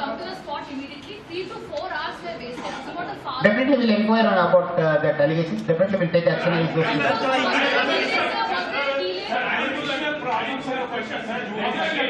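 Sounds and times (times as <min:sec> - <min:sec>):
voices talking over one another: 0:03.4 - 0:12.0.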